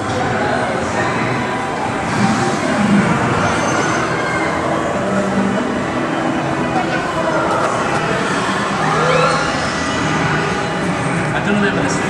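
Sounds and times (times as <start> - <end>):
indistinct voices: 0.0 - 12.0
noise and hum: 0.0 - 12.0.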